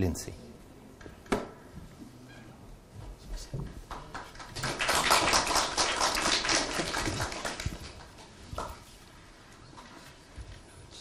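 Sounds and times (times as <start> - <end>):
audience applauding: 3.9 - 8.3.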